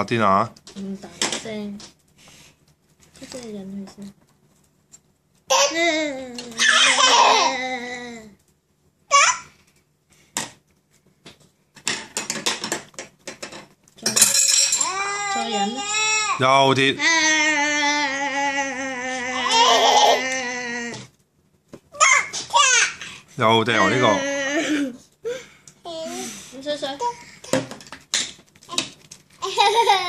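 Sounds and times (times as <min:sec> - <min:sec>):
toddler babbling: 0:14.8 - 0:16.4.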